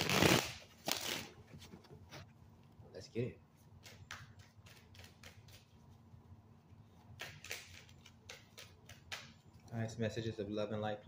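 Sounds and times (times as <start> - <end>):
cards shuffling: 7.2 - 9.4.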